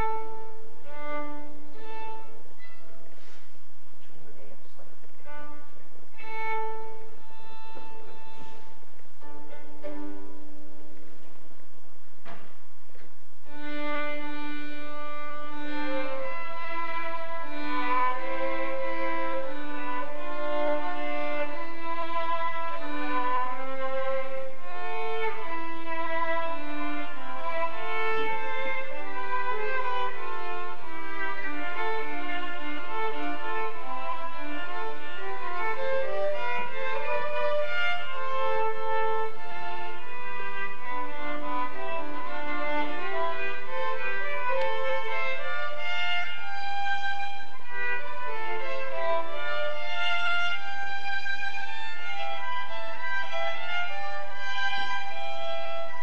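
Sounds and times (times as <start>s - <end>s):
violin duet: 0.0s - 11.6s, 12.2s - 56.0s.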